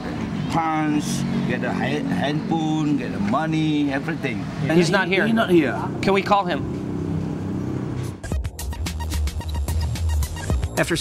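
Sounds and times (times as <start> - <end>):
music with heavy bass and drums: 8.2 - 11.0.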